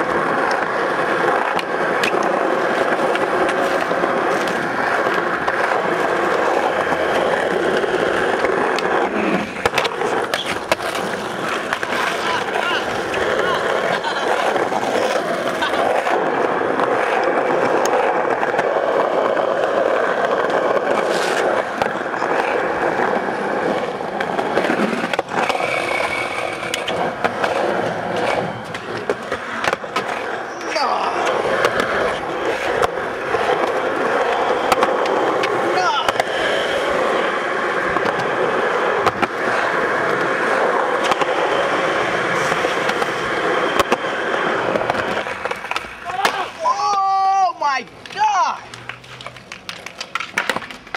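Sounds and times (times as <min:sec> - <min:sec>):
skateboard wheels rolling on asphalt: 0:00.0 - 0:50.9
skateboards clacking on ground: 0:00.0 - 0:50.9.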